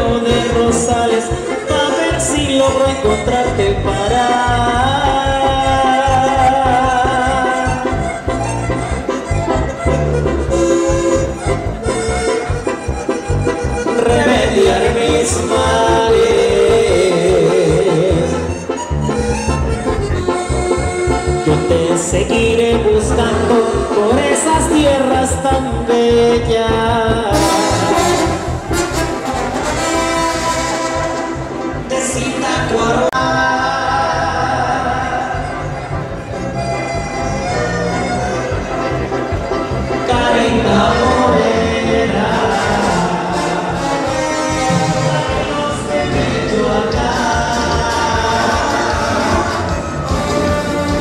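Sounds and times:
pulsing bass beat: 0.0 - 29.7, 43.8 - 51.0
live band playing dance music: 0.0 - 51.0
brass section holding notes: 27.3 - 31.9, 35.2 - 51.0.

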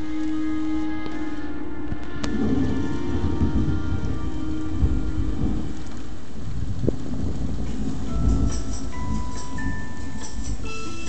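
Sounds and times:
rain: 0.0 - 11.0
rolling thunder: 1.9 - 11.0.

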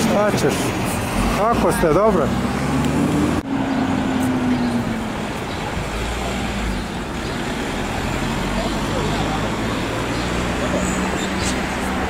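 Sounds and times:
steady road noise: 0.0 - 12.0.

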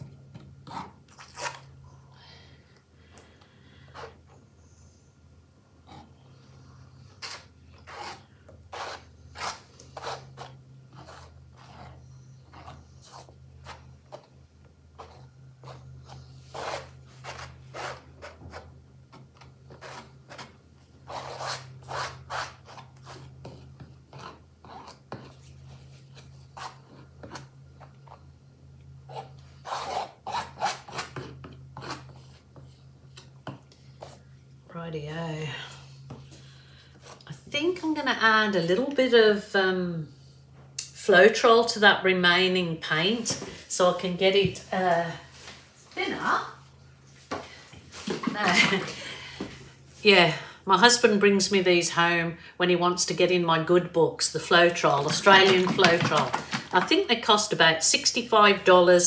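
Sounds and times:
steady low hum: 0.0 - 59.0
spatula scraping canvas: 0.6 - 1.8, 3.8 - 4.5, 5.9 - 28.2, 29.1 - 32.9, 54.6 - 56.9.

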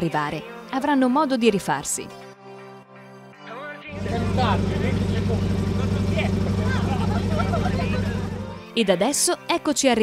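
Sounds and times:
car engine idling: 3.9 - 8.6
people talking: 4.0 - 10.0.

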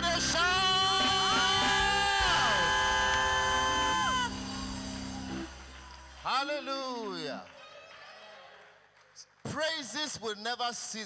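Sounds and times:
sustained accompaniment chords: 0.0 - 6.3
worship singing: 0.0 - 7.4.

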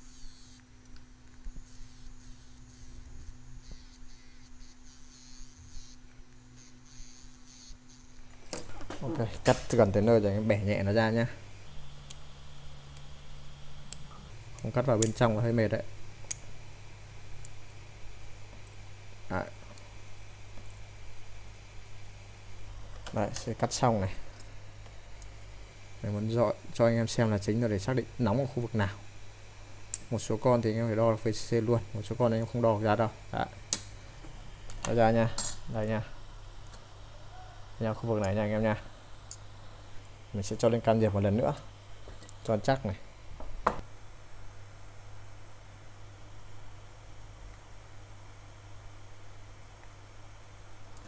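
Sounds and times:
rotary tool cutting metal: 0.0 - 0.6, 1.5 - 8.2
high scratching hiss: 0.0 - 0.7, 1.4 - 8.3
low electrical hum: 0.0 - 51.0.

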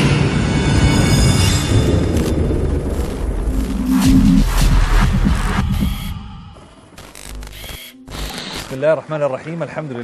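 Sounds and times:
deep low rumble: 1.5 - 6.6
noisy sound effect bursts: 2.4 - 8.8.

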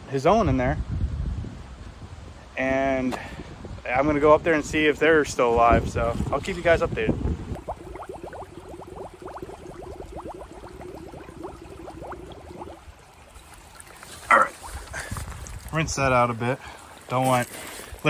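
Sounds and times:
bottle filling with gurgling glugs: 7.5 - 15.7.

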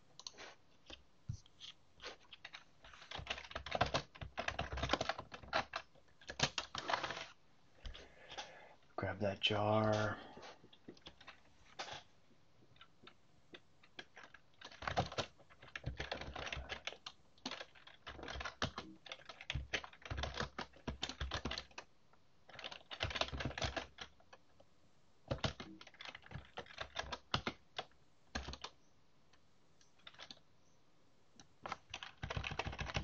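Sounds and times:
computer keyboard typing: 2.3 - 8.0, 12.8 - 24.4, 25.3 - 28.8, 29.8 - 30.4, 31.4 - 33.0.

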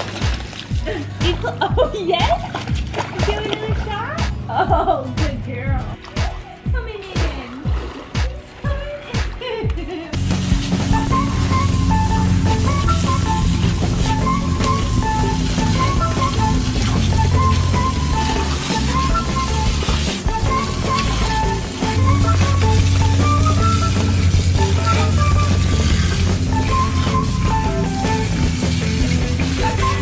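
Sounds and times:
instrumental background music: 0.0 - 30.0.

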